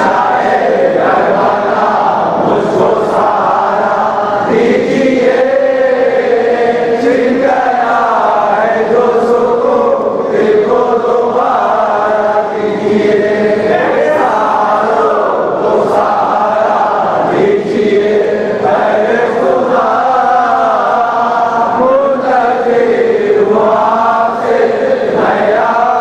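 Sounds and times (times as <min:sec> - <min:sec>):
group of voices chanting: 0:00.0 - 0:26.0.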